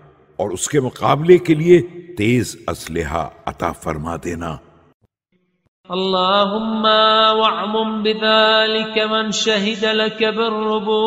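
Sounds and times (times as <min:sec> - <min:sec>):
man chanting: 0:00.0 - 0:04.6.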